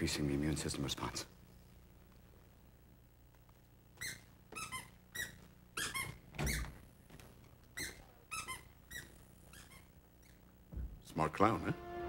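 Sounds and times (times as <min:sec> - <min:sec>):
short high-pitched squeaks: 0:04.0 - 0:06.7, 0:07.8 - 0:10.4.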